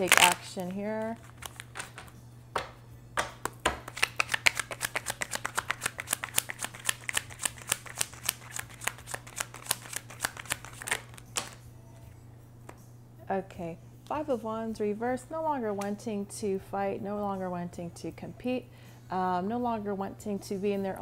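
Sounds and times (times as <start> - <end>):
cards being shuffled: 0.0 - 2.7, 3.4 - 11.6.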